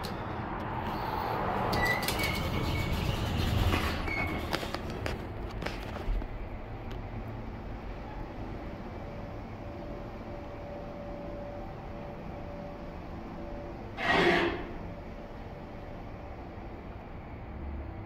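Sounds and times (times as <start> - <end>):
elevator doors squeaking: 1.0 - 5.0, 13.8 - 15.1
faint steady whine: 5.6 - 18.0
hydraulic pump humming: 6.4 - 17.3.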